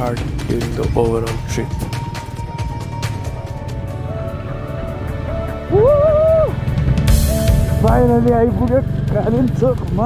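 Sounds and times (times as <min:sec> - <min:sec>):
music with drum beat: 0:00.0 - 0:03.9, 0:06.7 - 0:10.0
person whooping cheer: 0:05.7 - 0:06.6.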